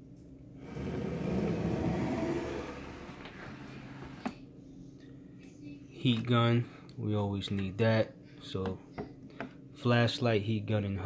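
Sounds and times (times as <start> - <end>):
plastic tub scraping along shelf: 0.6 - 4.4.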